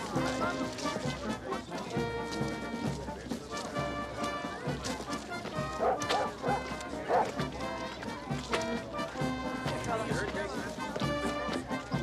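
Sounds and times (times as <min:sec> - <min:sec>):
background film music: 0:00.0 - 0:12.0
dog barking: 0:05.8 - 0:07.4.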